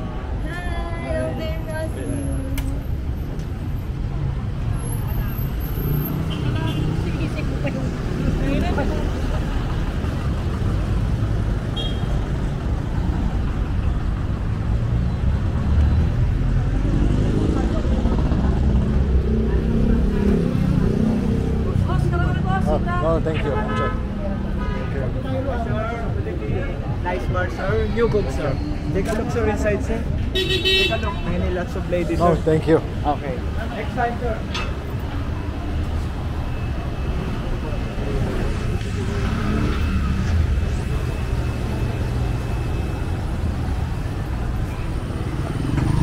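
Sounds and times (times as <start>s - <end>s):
passers-by talking: 0.0s - 11.7s, 12.3s - 46.0s
rumble of passing cars: 0.0s - 46.0s.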